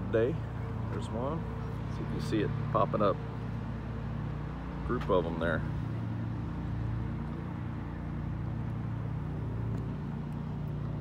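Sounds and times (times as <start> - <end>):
low engine drone: 0.0 - 11.0
outdoor background noise: 0.0 - 11.0.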